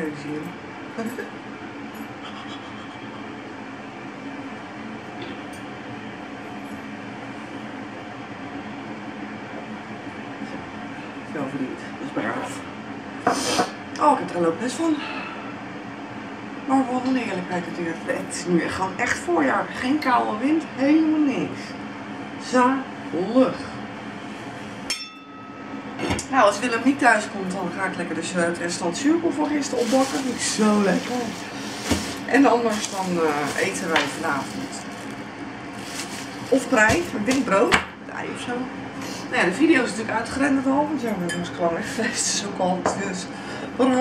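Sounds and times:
electric kettle heating water: 0.0s - 44.0s.

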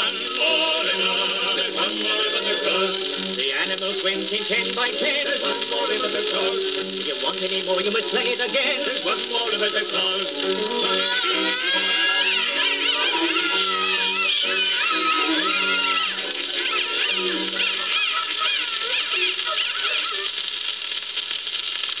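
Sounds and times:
old record with vocals and band: 0.0s - 20.3s
record surface hiss: 0.0s - 22.0s.

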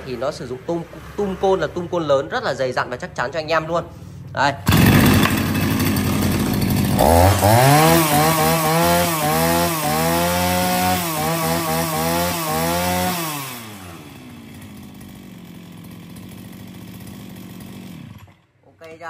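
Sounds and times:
brush cutter engine revving: 4.6s - 18.5s.

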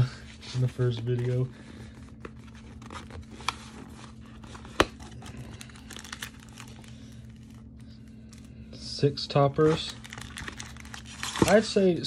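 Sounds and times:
foil packs crinkling: 0.6s - 8.7s, 9.4s - 11.9s.

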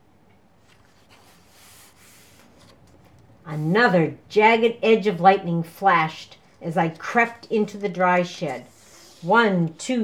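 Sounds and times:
book page turning: 0.6s - 3.2s.

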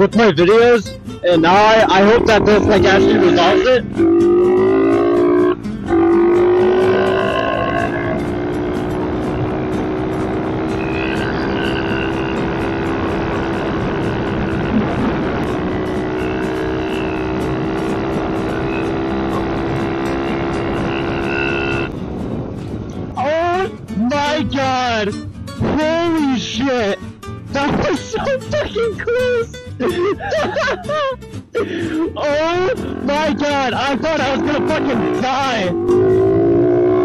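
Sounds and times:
motorbike engine running: 1.7s - 22.6s.

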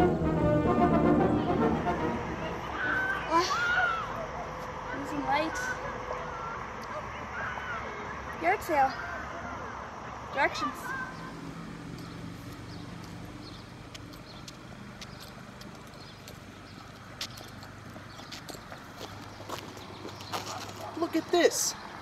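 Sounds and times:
sneaker footsteps on concrete: 12.0s - 21.2s.

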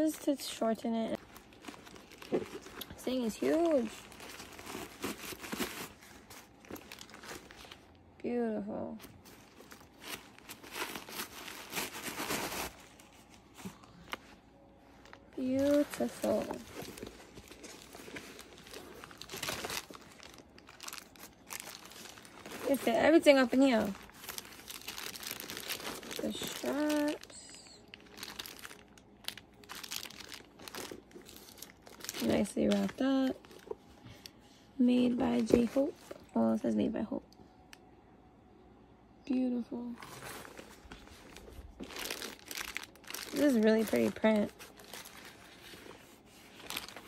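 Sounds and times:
plastic packaging crinkling: 1.1s - 8.0s, 9.1s - 33.9s, 40.0s - 47.0s.

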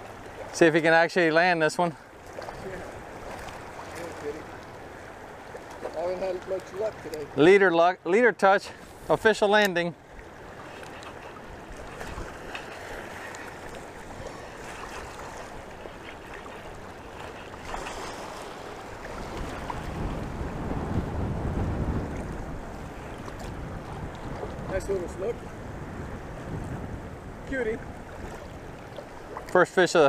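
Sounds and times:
choppy water lapping: 0.0s - 30.0s
wind buffeting microphone: 10.1s - 29.6s.

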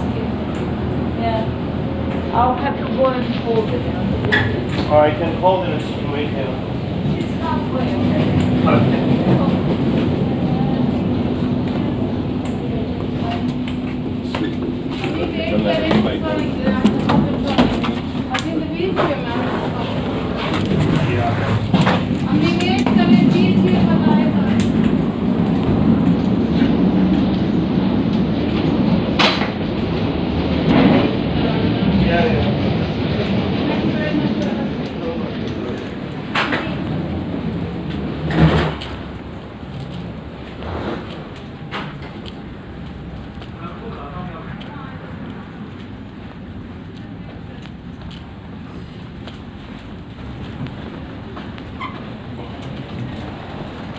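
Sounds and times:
indistinct voices: 0.0s - 28.7s
low rumble: 0.0s - 53.9s.

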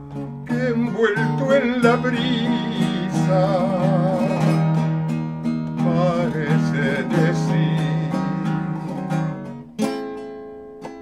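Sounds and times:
classical guitar: 0.0s - 11.0s
man singing a slow ballad: 0.1s - 9.4s.

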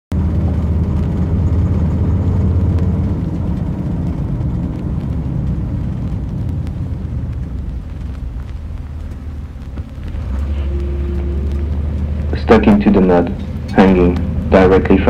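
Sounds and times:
loud low rumble: 0.1s - 15.0s.

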